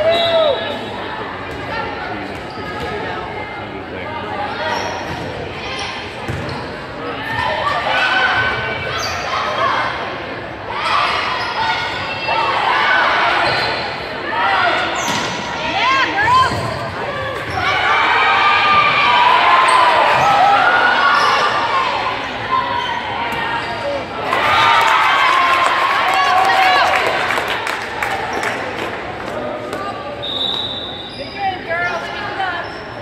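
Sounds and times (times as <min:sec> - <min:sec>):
voices echoing in hall: 0:00.0 - 0:33.0.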